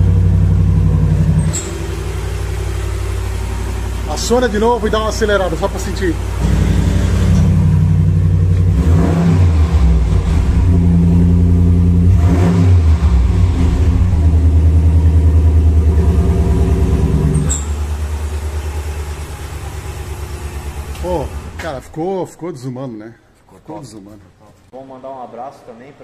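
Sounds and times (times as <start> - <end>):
car engine revving and idling: 0.0 - 21.9.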